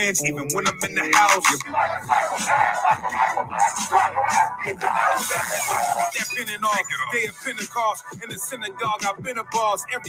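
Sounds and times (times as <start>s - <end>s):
hip-hop beat: 0.0s - 10.0s
bark-like vocal shouts: 1.6s - 6.0s.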